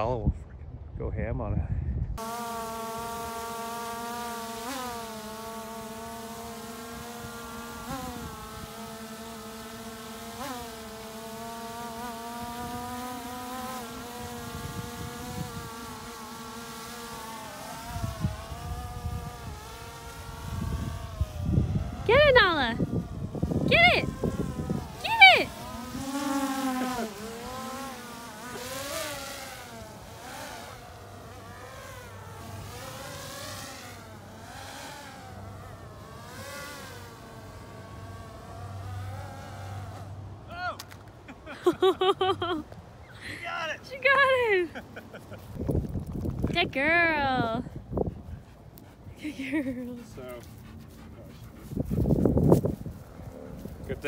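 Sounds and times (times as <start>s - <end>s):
drone propellers humming: 2.2s - 54.0s.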